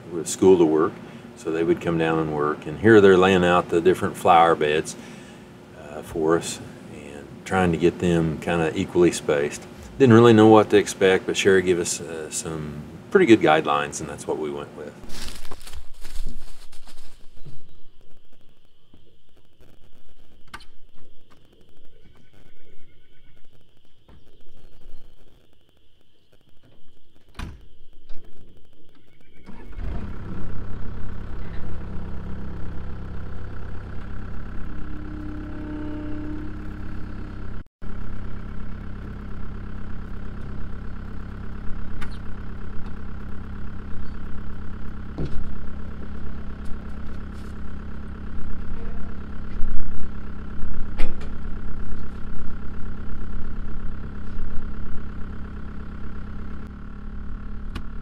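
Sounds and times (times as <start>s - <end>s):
diesel engine starting and running: 0.0s - 17.2s, 27.4s - 58.0s.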